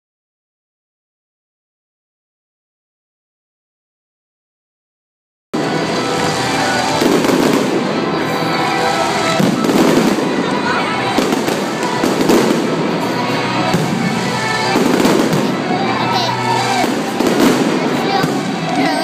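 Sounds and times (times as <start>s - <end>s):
firework shells booming: 5.6s - 15.8s, 16.6s - 18.8s
firework crackle: 5.6s - 19.0s.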